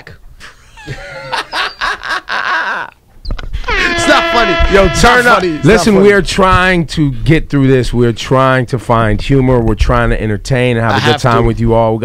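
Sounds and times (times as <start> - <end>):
people laughing: 0.4 - 3.0, 3.6 - 4.6, 10.9 - 11.4.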